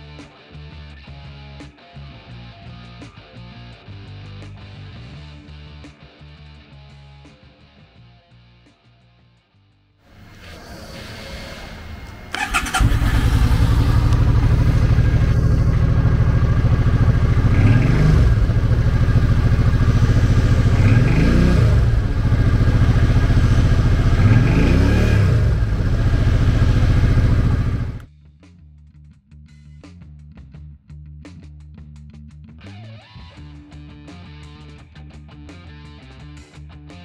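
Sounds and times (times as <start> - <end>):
motorcycle engine idling and revving: 10.1 - 28.1
motorcycle starter cranking: 11.7 - 16.7.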